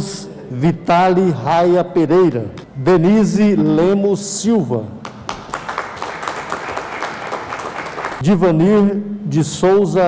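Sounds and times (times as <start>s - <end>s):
people clapping: 5.0s - 8.2s.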